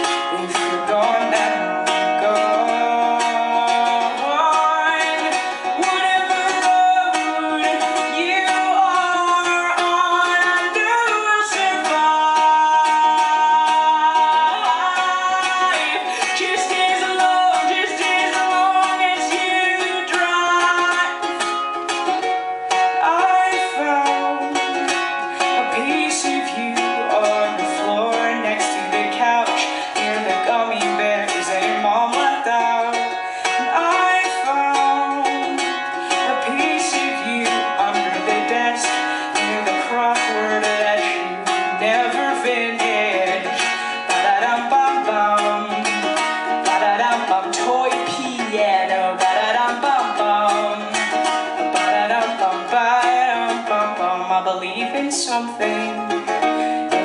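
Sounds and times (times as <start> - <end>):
strummed ukulele: 0.0 - 57.0
woman singing: 0.0 - 57.0.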